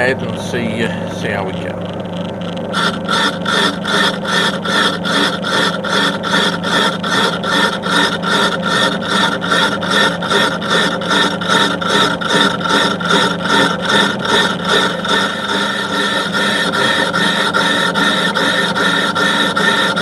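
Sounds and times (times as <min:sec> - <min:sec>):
low machine hum: 0:00.0 - 0:20.0
lathe tool scraping metal: 0:02.7 - 0:20.0.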